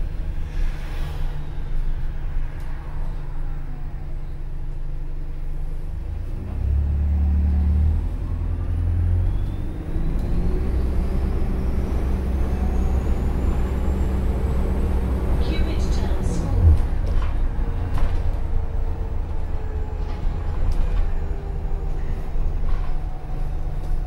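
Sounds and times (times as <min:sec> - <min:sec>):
bus engine and road drone: 0:00.0 - 0:24.0.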